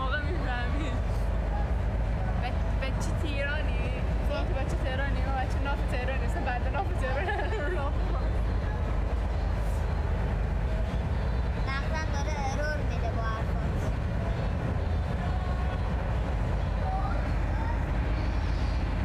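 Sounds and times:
faint voices talking: 0.0s - 19.0s
steady low rumble: 0.0s - 19.0s.

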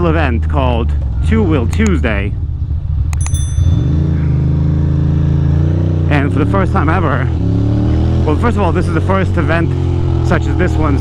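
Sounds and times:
motorcycle engine accelerating: 1.1s - 11.0s
bright ringing ding: 3.2s - 4.5s.

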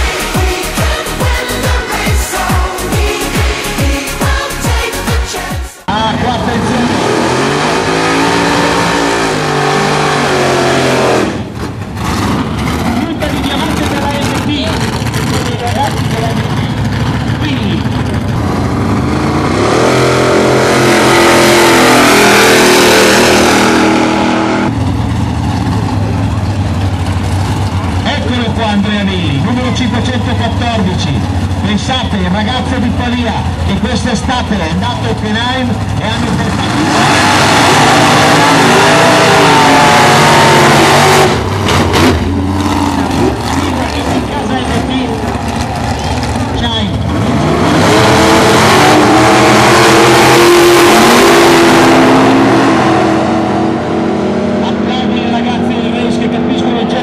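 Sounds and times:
car engines revving hard: 0.0s - 57.0s
engines rumbling at low revs: 0.0s - 57.0s.

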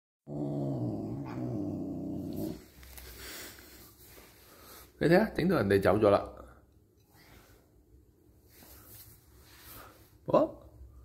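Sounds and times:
cat growling: 0.3s - 2.6s.

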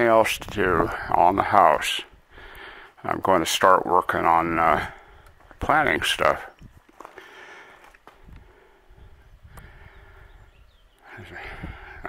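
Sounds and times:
footsteps on gravel: 5.3s - 8.3s.

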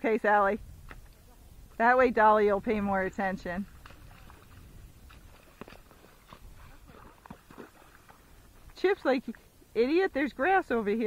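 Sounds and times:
low wind rumble: 0.0s - 11.0s
hooves splashing in water: 0.8s - 11.0s.

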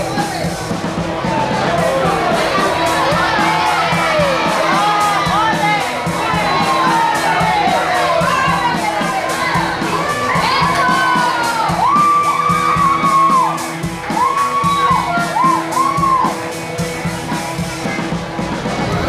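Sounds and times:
background music with steady beat: 0.0s - 19.0s
spectators cheering and shouting: 0.0s - 19.0s
high-pitched yells: 1.3s - 16.4s.

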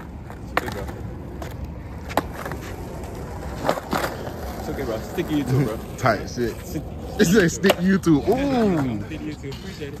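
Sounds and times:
skateboard clack: 0.0s - 10.0s
skateboard wheels rolling on asphalt: 0.0s - 10.0s.

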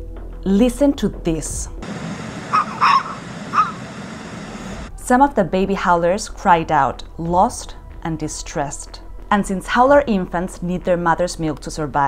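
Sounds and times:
steady background hiss: 1.8s - 4.9s
baby monkey crying: 2.4s - 3.9s.

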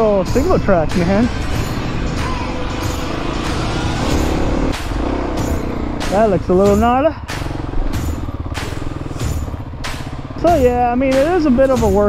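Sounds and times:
background music with steady beat: 0.0s - 12.0s
motorcycle engine running: 0.0s - 12.0s.

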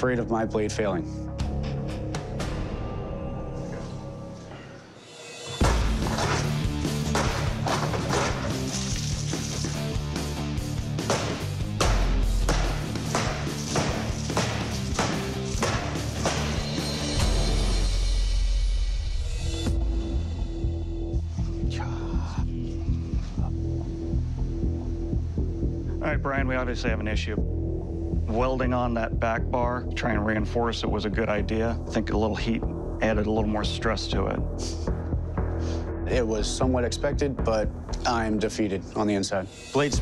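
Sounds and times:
dramatic background music: 0.0s - 40.0s
knife striking metal cans: 5.6s - 9.9s, 11.0s - 16.9s.

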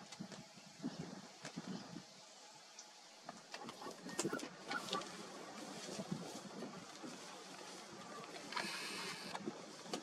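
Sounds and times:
faint ambience: 0.0s - 10.0s.

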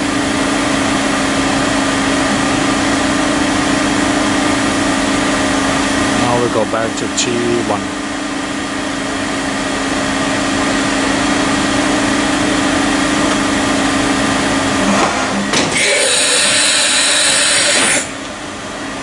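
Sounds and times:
machining center humming: 0.0s - 19.0s.

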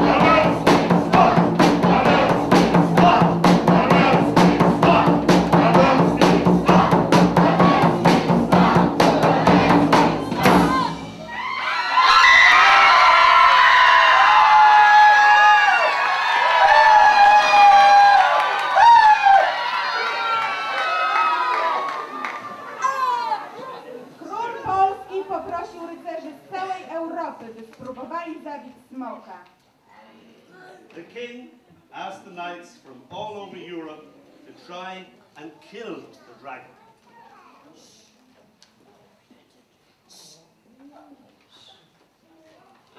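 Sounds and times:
fast live drumming: 0.0s - 11.4s.

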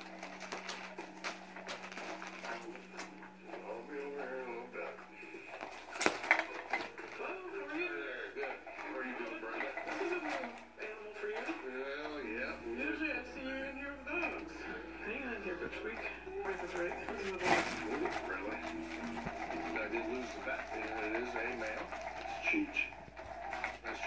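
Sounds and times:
indistinct voices: 0.0s - 24.0s.

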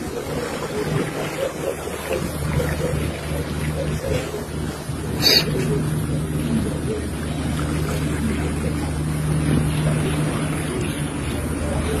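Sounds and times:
continuous rushing noise: 0.0s - 12.0s
low machine hum: 0.0s - 12.0s.

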